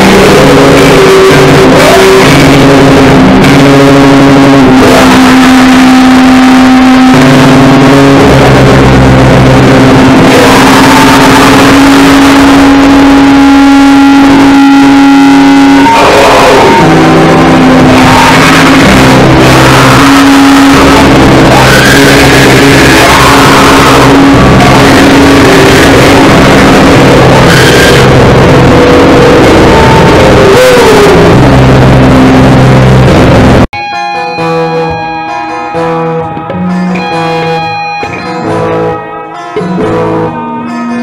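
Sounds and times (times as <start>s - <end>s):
harsh distorted noise music: 0.0s - 41.0s.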